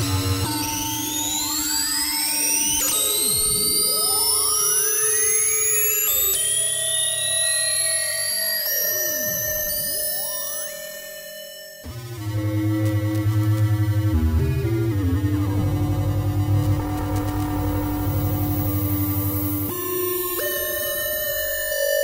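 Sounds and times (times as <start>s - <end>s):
gliding synthesizer sweeps: 14.3s - 19.8s.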